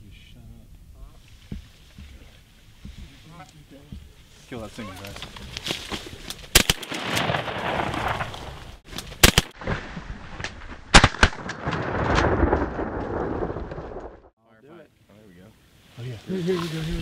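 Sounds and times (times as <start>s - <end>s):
shotgun blasts: 6.5s - 8.5s, 9.2s - 9.7s, 10.9s - 13.3s.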